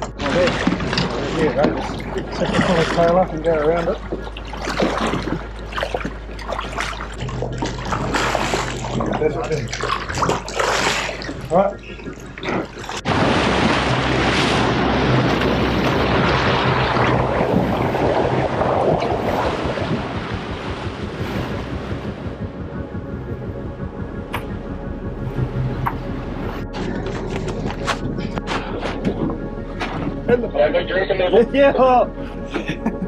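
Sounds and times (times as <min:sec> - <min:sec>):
water rushing against boat: 0:00.0 - 0:32.4.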